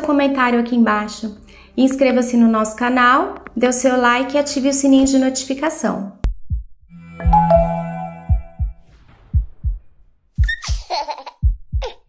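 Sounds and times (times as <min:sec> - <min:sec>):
heartbeat-style double thump: 0:06.2 - 0:12.0
held chime-like chord: 0:07.2 - 0:08.6.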